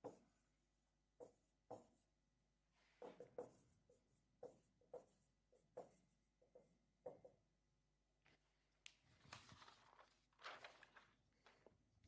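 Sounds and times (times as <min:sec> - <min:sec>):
marker pen writing on whiteboard: 0:00.0 - 0:07.7.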